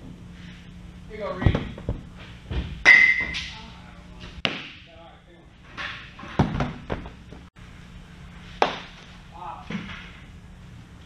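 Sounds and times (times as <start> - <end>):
baseballs striking glove: 4.4 - 4.8, 8.6 - 9.0.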